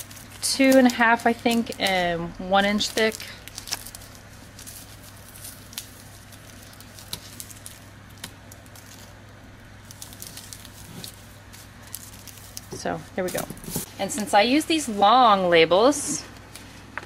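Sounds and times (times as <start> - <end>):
wax paper crinkling: 0.0 - 13.9
faint steady hum: 0.0 - 17.0.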